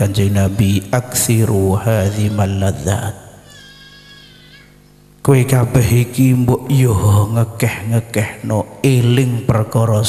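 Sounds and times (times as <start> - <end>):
steady low hum: 0.0 - 10.0
faint high drawn-out cry: 3.4 - 4.9.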